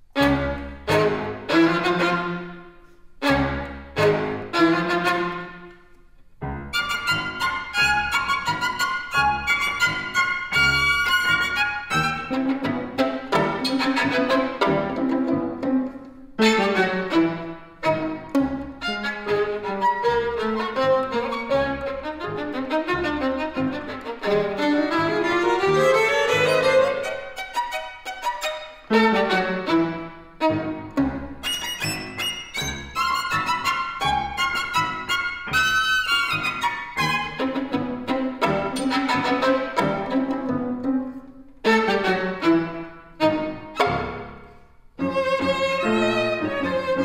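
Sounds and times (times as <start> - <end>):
violin and piano classical piece: 0.0 - 47.0.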